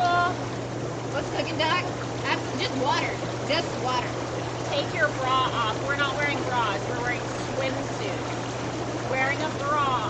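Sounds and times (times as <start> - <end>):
steady motor hum: 0.0 - 10.0
water churning from air jets: 0.0 - 10.0
women talking: 1.2 - 8.4, 9.1 - 10.0.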